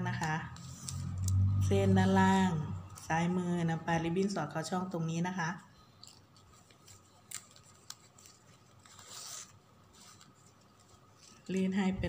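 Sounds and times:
plastic ribbon rustling: 0.1s - 1.6s, 5.8s - 12.0s.

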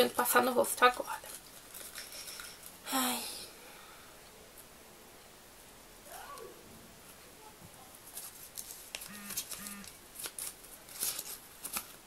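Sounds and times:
paper crinkling: 0.7s - 2.8s, 7.9s - 12.0s
person humming: 9.1s - 9.9s.

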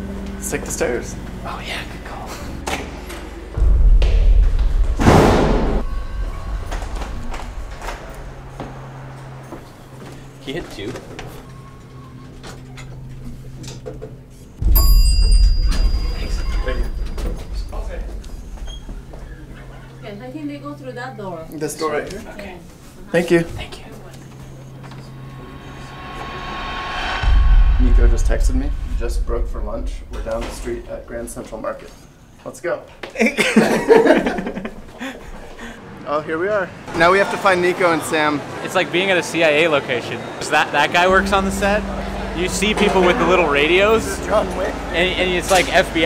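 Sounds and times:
low hum: 2.4s - 10.4s, 11.4s - 20.0s, 23.6s - 32.2s, 41.0s - 46.0s
deep rumbling thud: 3.5s - 9.8s, 14.6s - 19.8s, 24.7s - 31.6s
rising whoosh: 3.6s - 10.4s, 14.6s - 19.8s, 24.2s - 31.6s, 41.0s - 46.0s
rushing noise: 3.6s - 10.4s, 24.2s - 32.1s, 40.9s - 46.0s
knocks and movement sounds: 3.6s - 19.9s.

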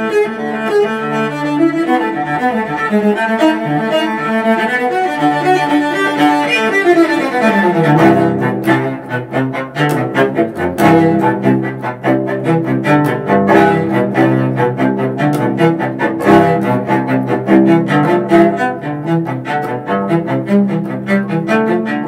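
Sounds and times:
bowed cello: 0.0s - 22.0s.

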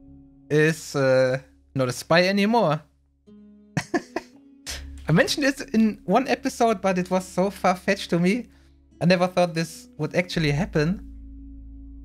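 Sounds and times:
quiet background music: 0.0s - 12.0s
man chuckling: 3.8s - 4.8s.

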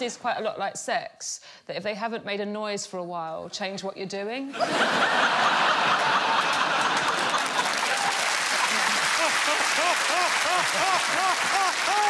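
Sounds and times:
audience applauding: 5.1s - 12.0s.

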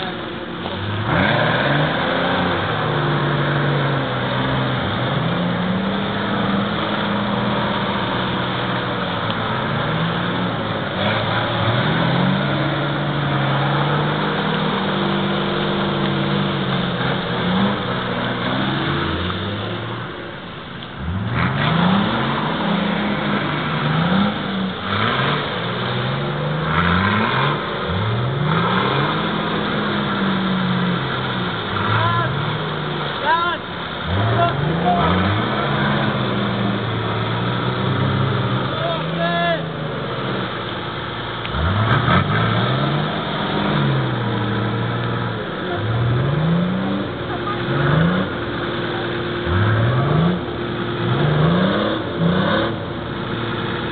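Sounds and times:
off-road engine revving: 0.0s - 53.9s.

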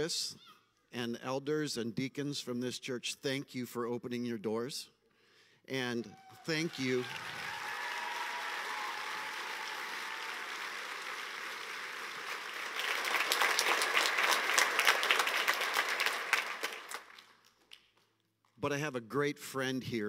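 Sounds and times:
audience applauding: 6.2s - 17.9s.

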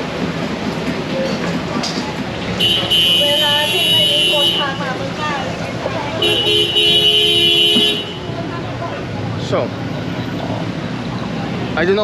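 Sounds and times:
street traffic hum: 0.0s - 12.0s
vehicle horn blast: 2.6s - 4.8s, 6.2s - 8.3s.

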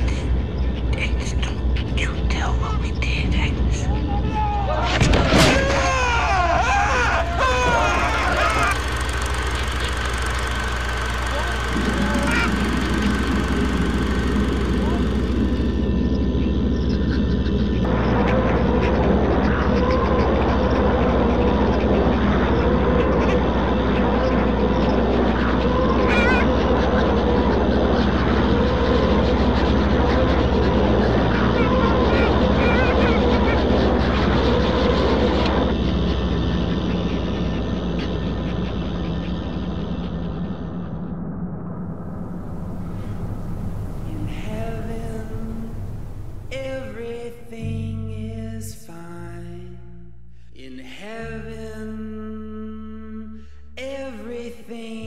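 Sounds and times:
warbling voice-like sounds: 0.0s - 48.2s
low drone: 0.0s - 55.0s.

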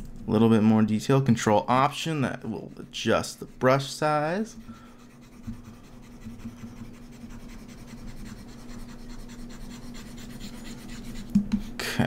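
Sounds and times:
low electrical hum: 0.0s - 12.0s
scratchy rubbing of hands: 2.6s - 11.8s.

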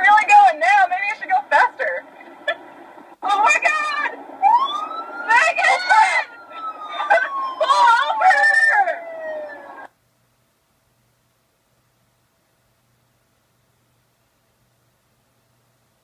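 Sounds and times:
voices shouting: 3.2s - 9.9s
siren rising and falling: 3.4s - 9.9s.

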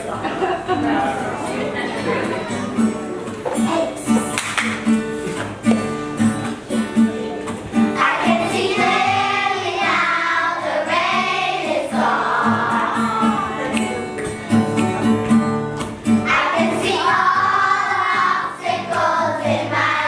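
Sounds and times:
children's choir singing: 7.9s - 13.7s, 16.1s - 20.0s.

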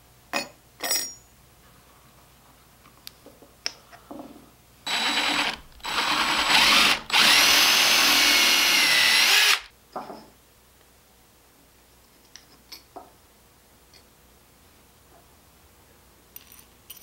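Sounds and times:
drill whining: 4.9s - 9.7s.

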